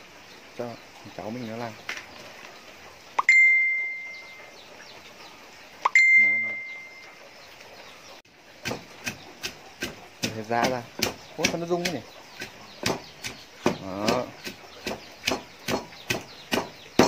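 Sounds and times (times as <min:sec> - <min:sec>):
clear ringing dings: 0:03.2 - 0:04.5, 0:05.9 - 0:07.2
wooden pestle pounding in mortar: 0:08.6 - 0:17.0.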